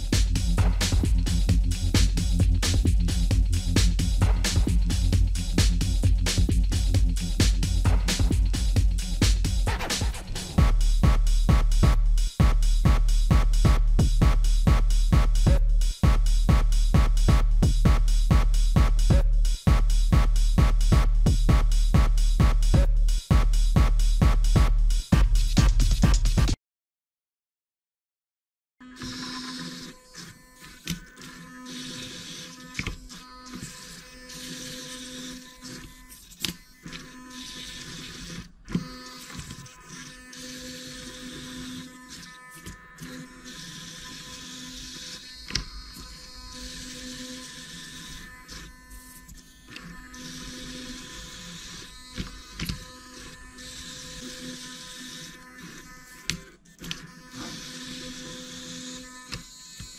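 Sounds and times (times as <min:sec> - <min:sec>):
servo motors whining: 0:28.9 - 0:59.9.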